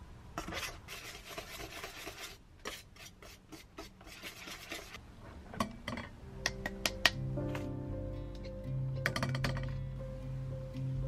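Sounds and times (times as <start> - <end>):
whisk scraping metal bowl: 0.4 - 5.0
soft music: 6.2 - 11.0.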